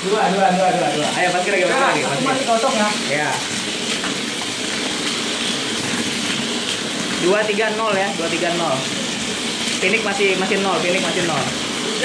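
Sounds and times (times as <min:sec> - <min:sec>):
small toy car motors whirring: 0:00.0 - 0:12.0.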